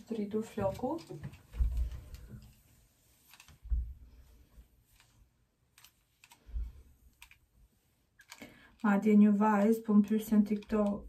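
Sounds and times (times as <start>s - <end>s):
woman speaking: 0.0s - 1.3s, 8.8s - 11.0s.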